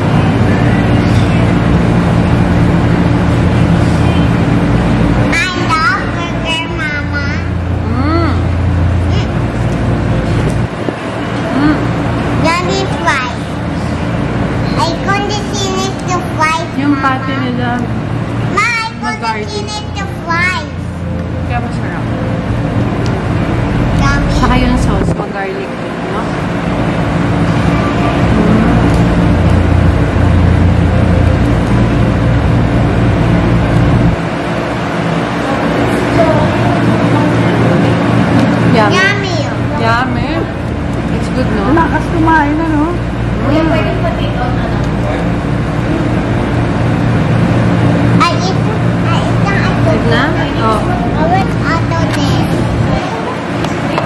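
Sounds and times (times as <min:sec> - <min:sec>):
low mechanical hum: 0:00.0 - 0:54.0
voices: 0:00.0 - 0:54.0.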